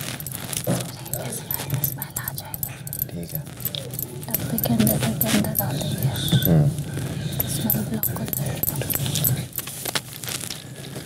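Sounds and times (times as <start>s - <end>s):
coins clinking: 0.0s - 10.0s.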